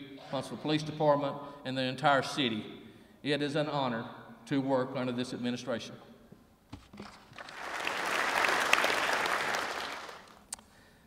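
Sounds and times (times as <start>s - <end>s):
audience applauding: 7.3s - 10.4s.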